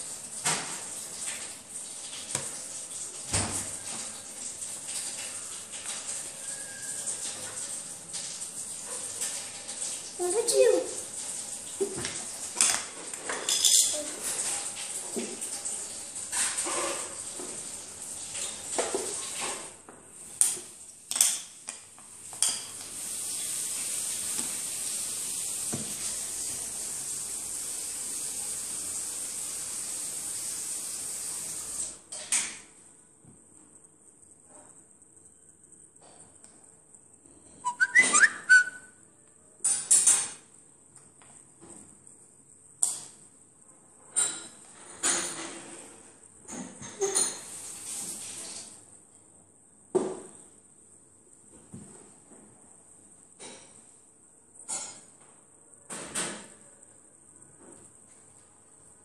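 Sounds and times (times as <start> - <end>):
steady hiss: 22.0 - 32.0, 47.2 - 48.9.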